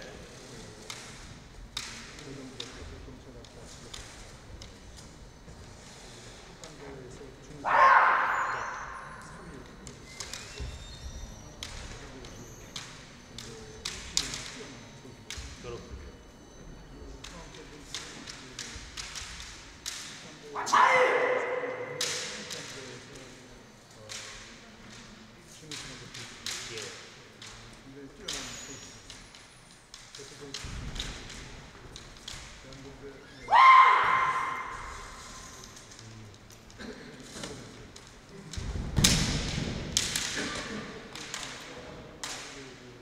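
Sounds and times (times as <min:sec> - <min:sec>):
loud drawn-out shout: 0:20.6 - 0:22.0, 0:33.5 - 0:35.0
bamboo swords clacking: 0:21.3 - 0:23.0, 0:37.4 - 0:42.6.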